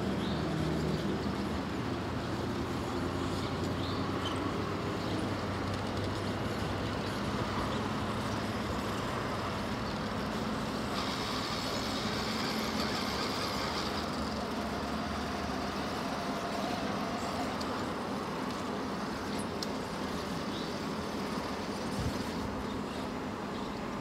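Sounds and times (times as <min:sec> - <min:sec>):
high motor whine: 0:00.0 - 0:24.0
toy car electric motor whirring: 0:10.3 - 0:18.0.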